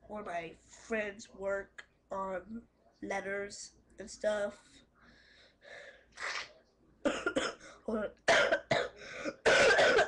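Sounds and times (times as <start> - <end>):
soft breaths: 4.5 - 6.9
boy coughing: 7.0 - 10.0.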